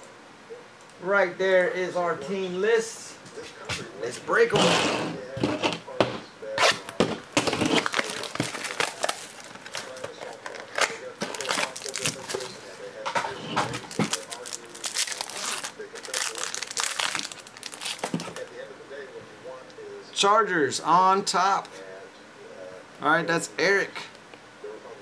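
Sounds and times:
plastic wrapper crinkling: 7.4 - 12.6, 13.7 - 18.6.

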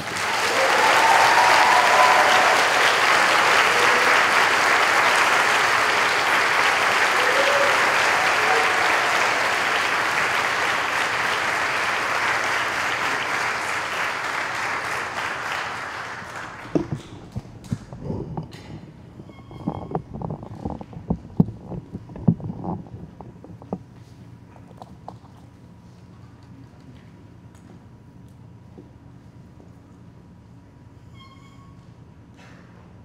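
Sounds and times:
audience applause: 0.0 - 17.3.

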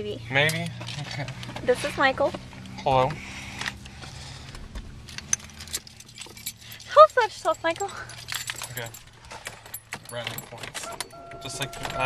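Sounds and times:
low steady car hum: 0.0 - 12.0
metallic clicks and jingles: 5.0 - 12.0.

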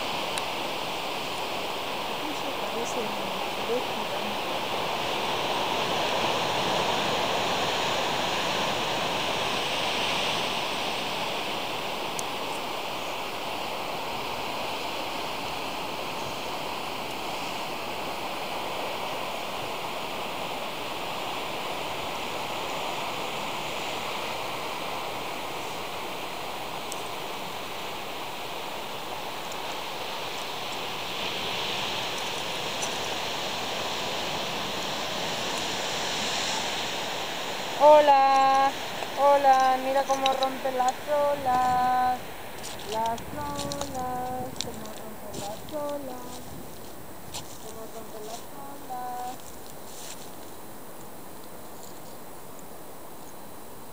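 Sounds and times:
ocean surf breaking on rocks: 0.0 - 53.9.

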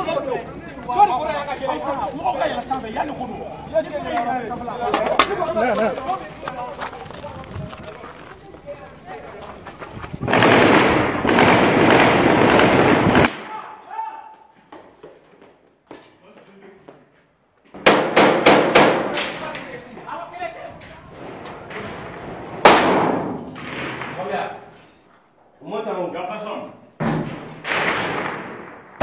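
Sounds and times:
men's voices: 0.0 - 10.2, 19.0 - 22.0
gunshots: 10.2 - 13.7, 17.8 - 19.5, 21.2 - 24.6, 27.0 - 29.0.

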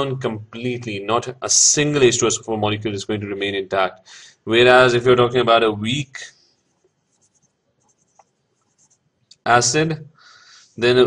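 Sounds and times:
pen scratching on paper: 6.6 - 9.0.

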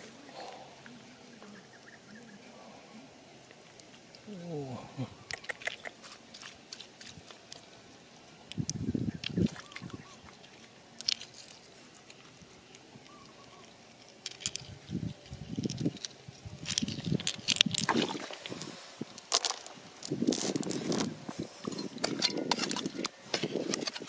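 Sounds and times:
hands squelching in wet mud: 17.7 - 19.4.

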